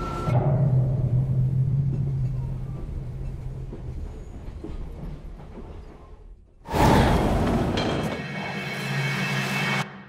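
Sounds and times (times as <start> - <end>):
train carriage rumble: 1.2 - 8.4.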